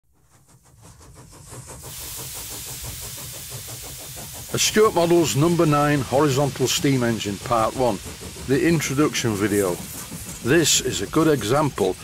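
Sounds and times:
steam engine exhaust beat: 0:00.1 - 0:12.0
steam hissing: 0:00.2 - 0:12.0.

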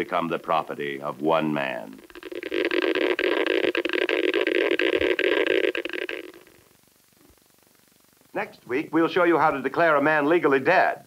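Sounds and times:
geiger counter crackling: 0:00.0 - 0:11.0.

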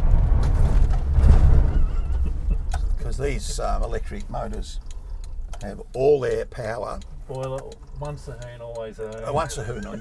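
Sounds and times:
tyre and road rumble: 0:00.0 - 0:05.8.

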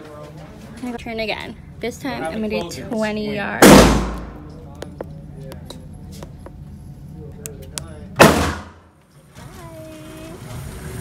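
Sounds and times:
gunshot echoing indoors: 0:03.6 - 0:04.5, 0:08.2 - 0:08.8.

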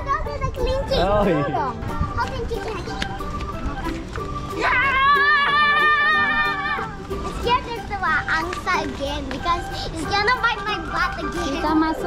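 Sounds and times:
young girls chattering excitedly: 0:00.0 - 0:03.7, 0:06.2 - 0:12.0.

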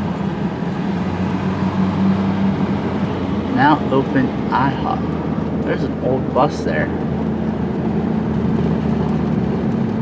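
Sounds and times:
road and engine noise in car: 0:00.0 - 0:10.0.

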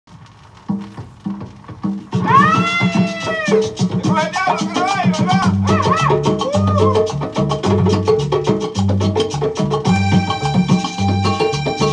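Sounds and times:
cumbia record playing: 0:00.1 - 0:11.9.

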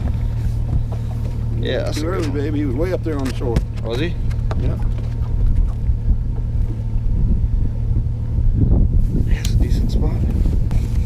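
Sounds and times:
outboard engine idling: 0:00.0 - 0:11.0.

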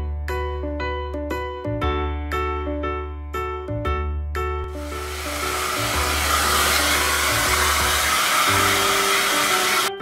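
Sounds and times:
hair dryer blowing: 0:04.7 - 0:10.0.

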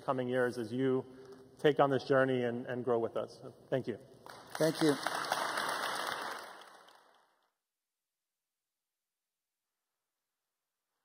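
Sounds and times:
audience applauding: 0:04.2 - 0:07.3.

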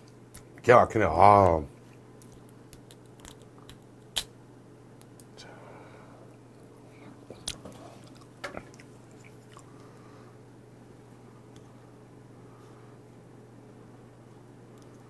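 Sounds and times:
faint room hum: 0:00.0 - 0:15.0
shrimp shell crackling and snapping: 0:02.2 - 0:04.3.

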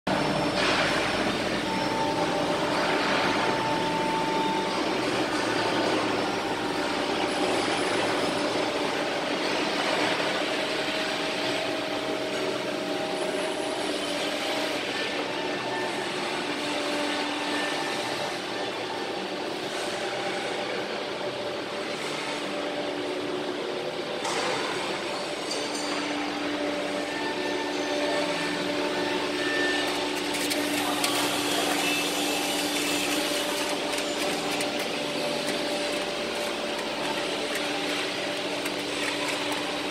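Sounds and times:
furnace machinery motor hum: 0:00.1 - 0:39.9.

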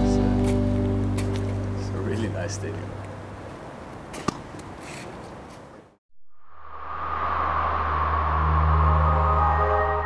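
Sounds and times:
swelling whoosh: 0:06.3 - 0:10.0
sustained musical tones: 0:08.1 - 0:10.0.

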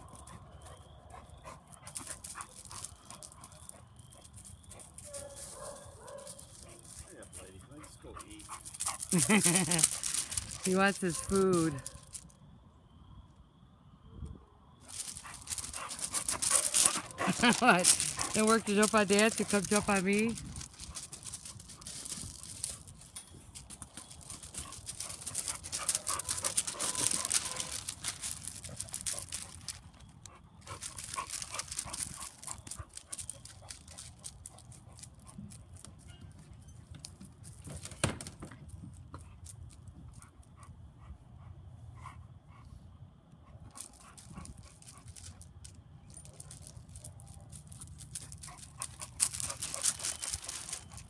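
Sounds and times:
dog panting: 0:06.6 - 0:10.7, 0:15.0 - 0:22.8, 0:24.0 - 0:29.7
footsteps crunching on gravel: 0:08.2 - 0:12.2, 0:14.9 - 0:30.0, 0:48.1 - 0:51.0.

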